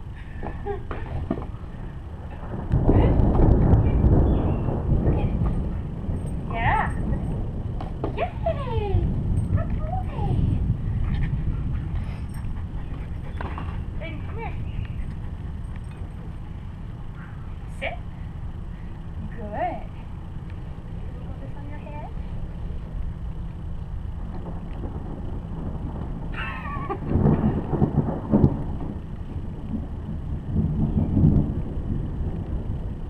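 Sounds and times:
thunder rumbling: 0.0s - 33.0s
wind buffeting microphone: 0.0s - 33.0s.

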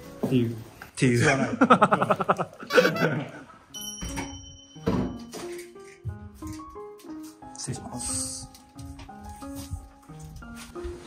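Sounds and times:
light piano-like melody: 0.0s - 0.9s, 2.8s - 11.0s.

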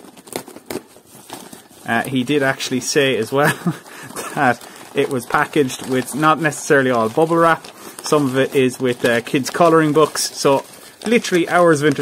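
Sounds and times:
plastic mailer crinkling: 0.0s - 12.0s.

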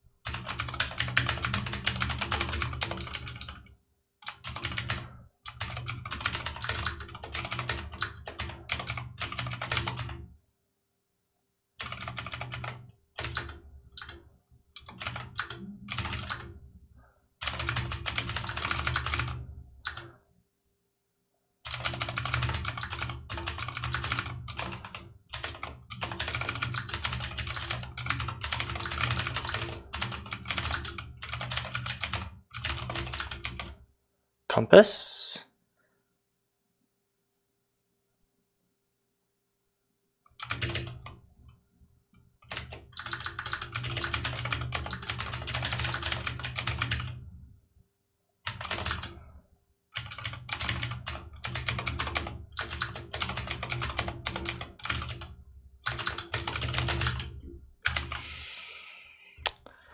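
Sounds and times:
computer keyboard typing: 0.2s - 10.2s, 11.8s - 14.2s, 14.8s - 16.5s, 17.4s - 20.2s, 21.7s - 33.8s, 40.4s - 41.2s, 42.4s - 47.2s, 48.5s - 49.2s, 50.0s - 58.3s.

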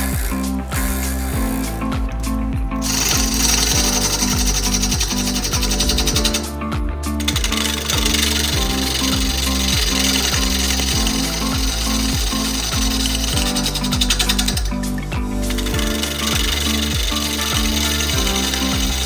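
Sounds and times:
background music with steady beat: 0.0s - 19.0s.

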